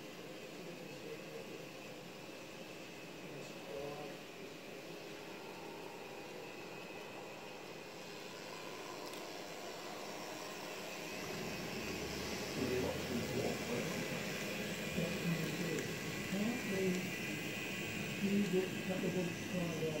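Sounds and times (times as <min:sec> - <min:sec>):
model train rushing along track: 0:00.0 - 0:20.0.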